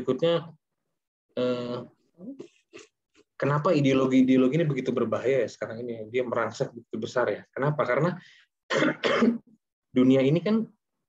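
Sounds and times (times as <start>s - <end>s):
man clearing his throat: 8.7s - 9.5s.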